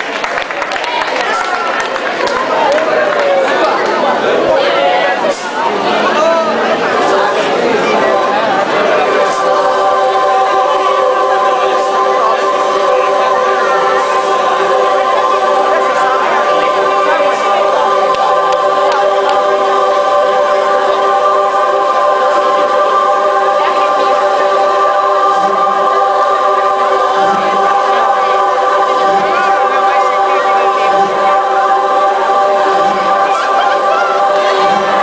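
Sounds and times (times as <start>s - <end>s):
soft low pulses: 2.4s - 35.0s
sustained synthesizer chord: 2.6s - 35.0s.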